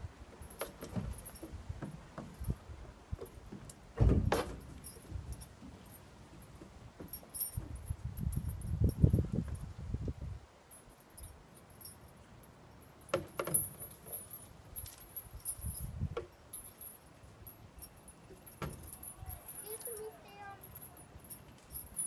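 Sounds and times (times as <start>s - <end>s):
chains jangling and clunking: 0.3s - 9.7s, 10.7s - 22.0s.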